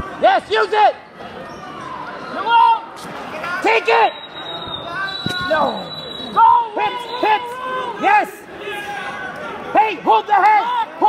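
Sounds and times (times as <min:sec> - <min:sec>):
men yelling: 0:06.4 - 0:11.0.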